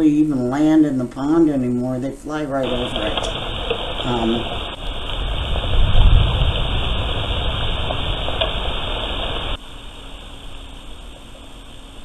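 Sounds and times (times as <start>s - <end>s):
faint hum: 0.0s - 12.0s
steady hiss: 2.4s - 12.0s
wind buffeting microphone: 2.6s - 9.6s.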